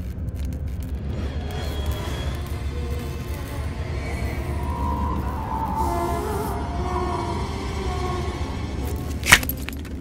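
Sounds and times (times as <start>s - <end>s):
low dark film score drone: 0.0s - 10.0s.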